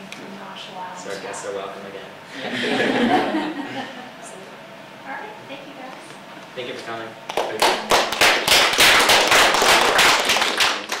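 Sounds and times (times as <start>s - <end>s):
small group applauding: 7.3s - 11.0s.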